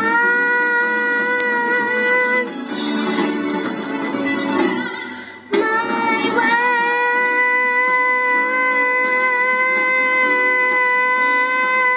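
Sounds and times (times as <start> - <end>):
girl singing into microphone: 0.0 - 2.6, 4.7 - 11.9
musical accompaniment: 0.0 - 11.9.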